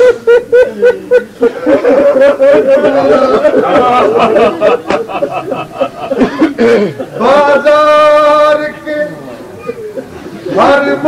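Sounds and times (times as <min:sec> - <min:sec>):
man chanting a lament: 0:07.2 - 0:09.3, 0:10.5 - 0:11.0.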